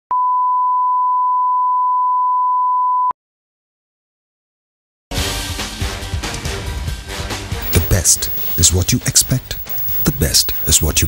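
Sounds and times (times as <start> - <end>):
steady test tone beep: 7.6 - 11.0.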